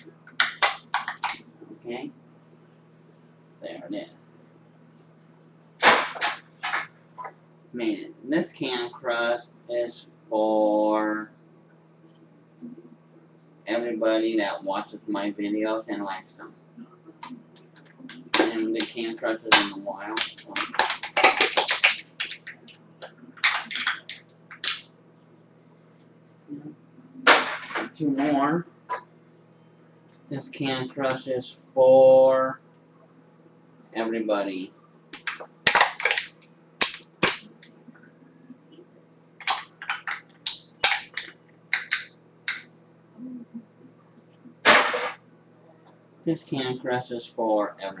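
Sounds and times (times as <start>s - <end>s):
drink can being crushed: 19.5s - 22.4s, 35.2s - 37.4s, 39.4s - 42.6s.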